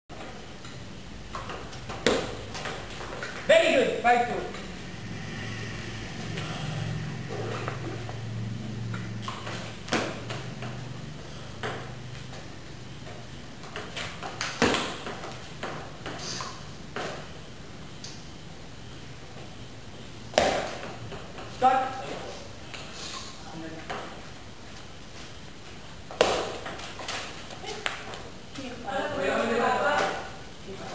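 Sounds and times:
table tennis ball on paddles: 0.2 - 3.5, 8.9 - 17.3, 20.3 - 21.6, 26.1 - 28.2
ball bouncing on table: 11.6 - 12.0.

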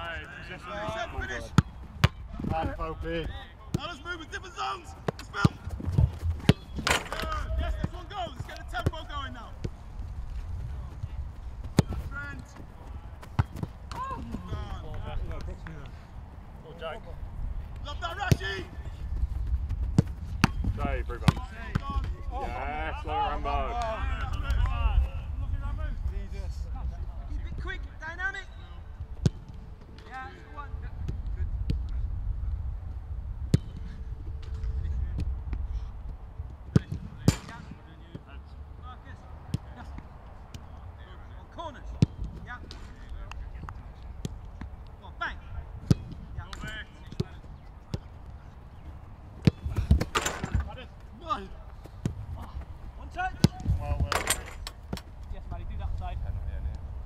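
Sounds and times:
distant shouts and voices: 0.0 - 9.8, 10.6 - 19.4, 20.5 - 29.2, 44.8 - 54.2
footballs being kicked: 9.6 - 14.9, 49.4 - 51.1.

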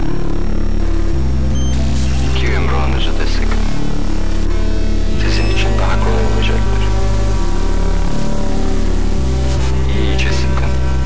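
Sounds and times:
loud low drone: 0.0 - 11.0
static hiss: 0.0 - 11.0.

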